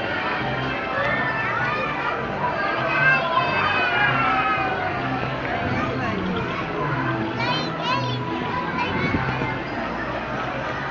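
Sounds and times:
crowd chatter: 0.0s - 10.9s
music: 0.0s - 10.9s.

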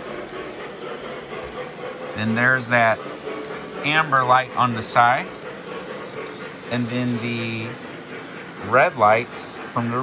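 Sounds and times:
model train wheels rumbling on rail: 0.0s - 10.0s.

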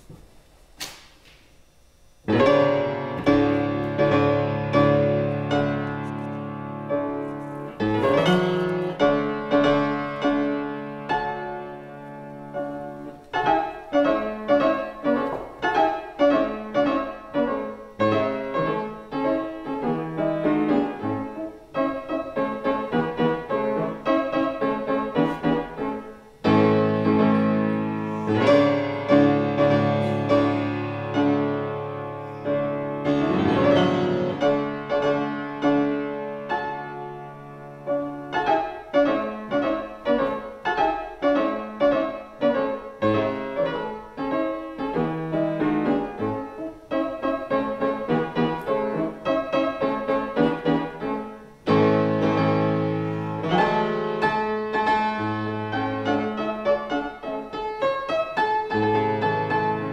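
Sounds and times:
fortepiano march: 2.2s - 59.9s.

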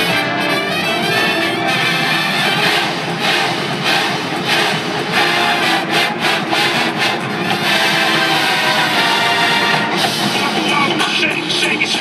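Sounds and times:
sharp drum accents: 0.0s - 11.4s
marching band playing: 0.0s - 12.0s.

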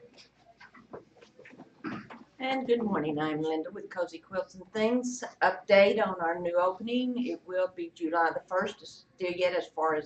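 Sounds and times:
footsteps shuffling: 0.0s - 2.8s.

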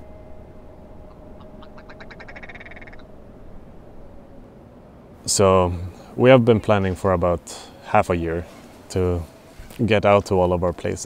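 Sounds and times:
dry rattling animal call: 1.1s - 3.1s.

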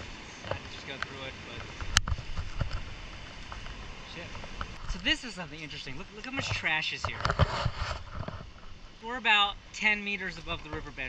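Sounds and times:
rustling: 0.0s - 9.0s.

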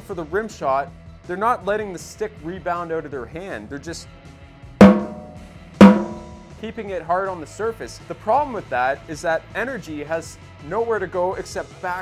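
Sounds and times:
snare drum rimshots: 4.8s - 6.5s.

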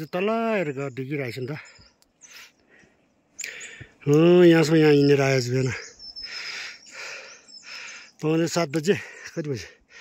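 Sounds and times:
person breathing hard: 6.2s - 8.2s.

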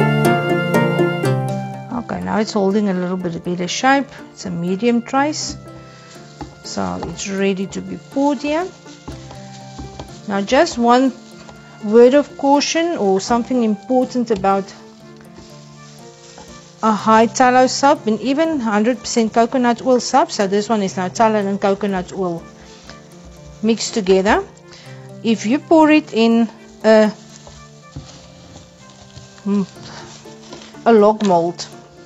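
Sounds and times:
spatula scraping soap batter: 4.8s - 32.0s.

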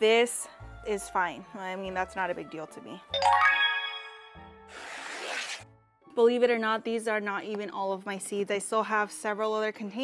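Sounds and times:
chime ringing: 3.2s - 4.5s.

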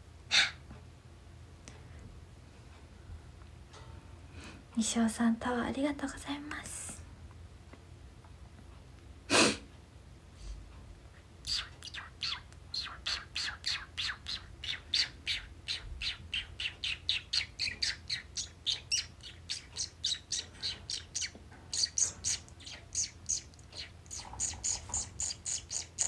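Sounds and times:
bird chirping rapidly: 11.4s - 26.0s.

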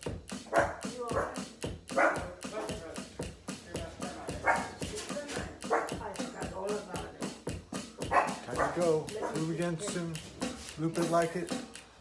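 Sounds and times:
drumsticks on electronic drum pads: 0.0s - 12.0s
loud bark-like calls: 0.4s - 2.8s, 4.4s - 4.8s, 5.6s - 6.1s, 8.0s - 9.6s.

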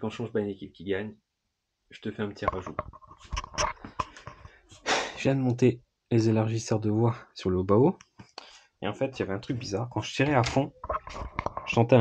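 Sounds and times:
short breathy bursts: 4.0s - 5.3s.

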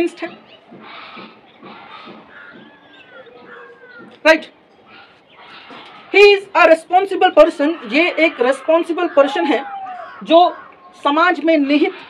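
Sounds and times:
faint falling animal calls: 0.7s - 6.2s, 7.0s - 12.0s.

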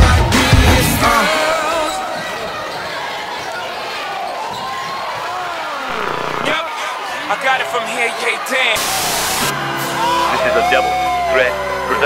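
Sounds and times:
spectators shouting in echoing hall: 0.0s - 12.0s.

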